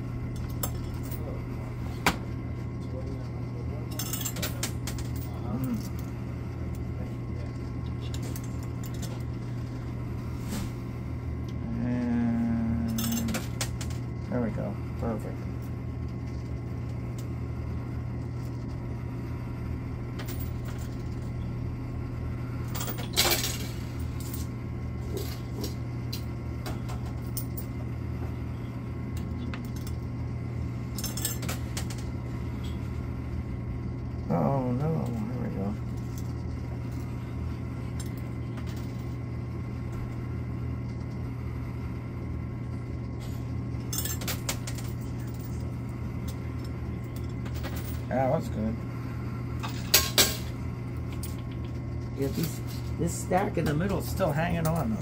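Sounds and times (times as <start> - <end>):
low hum: 0.0 - 55.0
coins clinking in arcade machine: 3.9 - 6.1, 12.8 - 14.0, 22.7 - 24.5, 30.9 - 32.1, 43.9 - 45.6, 49.6 - 50.5, 51.1 - 55.0.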